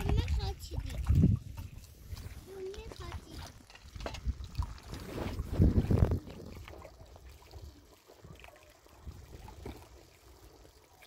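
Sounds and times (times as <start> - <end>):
wind buffeting microphone: 0.0 - 7.7.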